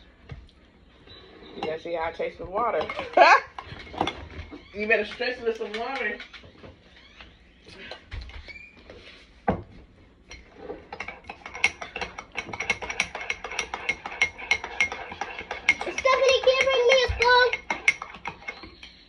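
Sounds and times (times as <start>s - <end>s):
metal spoon clinking in mug: 10.3s - 19.0s.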